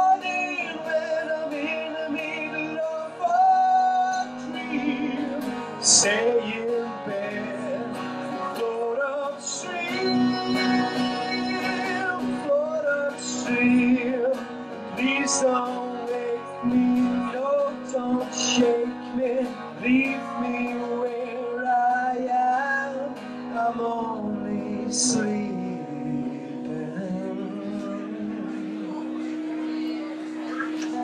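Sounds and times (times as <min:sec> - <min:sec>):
acoustic guitar strumming: 0:00.0 - 0:31.0
man singing: 0:00.0 - 0:31.0.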